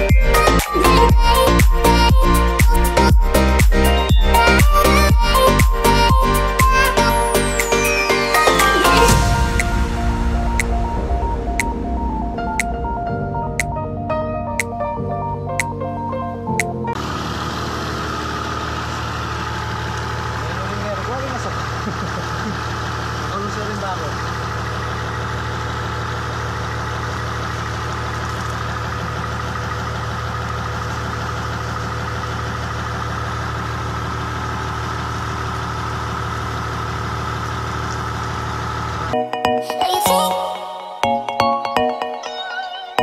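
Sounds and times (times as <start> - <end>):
diesel engine idling: 0.0 - 42.2.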